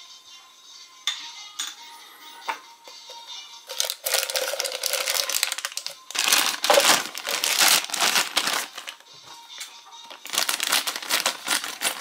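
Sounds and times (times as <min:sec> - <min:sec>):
plastic bag crinkling: 0:03.7 - 0:09.0, 0:10.0 - 0:12.0.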